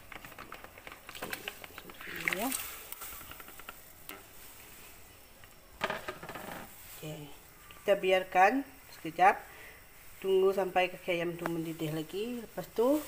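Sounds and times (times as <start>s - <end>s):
water splashing: 1.1s - 3.0s.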